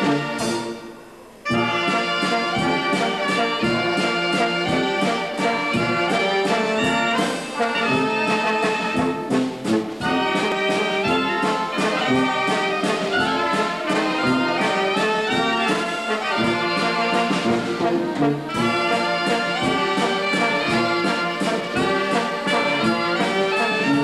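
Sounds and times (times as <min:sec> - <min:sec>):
brass band playing: 0:00.0 - 0:24.0.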